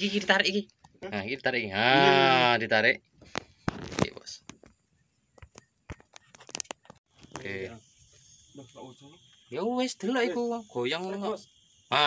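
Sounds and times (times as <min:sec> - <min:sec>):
high-pitched insect drone: 0:06.5 - 0:12.0.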